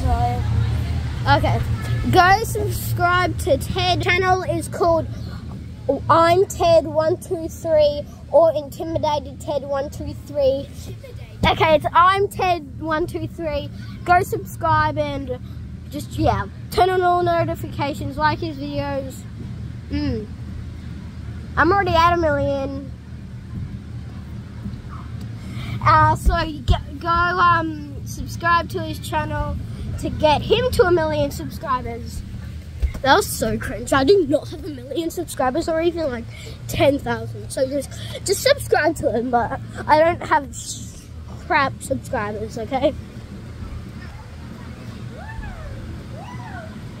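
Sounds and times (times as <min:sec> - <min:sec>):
steady low rumble: 0:00.0 - 0:47.0.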